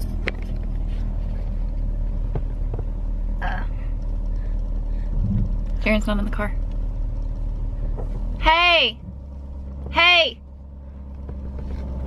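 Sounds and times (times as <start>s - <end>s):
car engine rumble: 0.0s - 12.0s.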